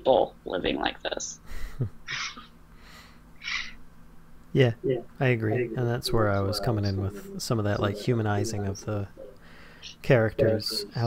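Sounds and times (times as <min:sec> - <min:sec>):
person breathing: 0:01.4 - 0:01.9, 0:02.8 - 0:03.8, 0:09.4 - 0:10.0.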